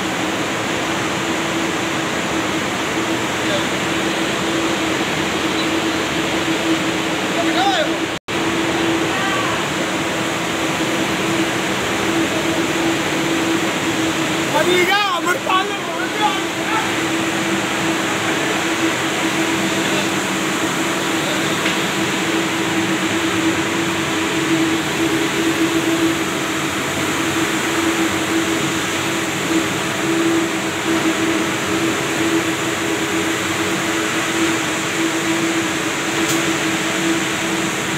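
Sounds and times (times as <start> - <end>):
constant machine hum: 0.0 - 37.9
spinning machinery hiss: 0.0 - 37.9.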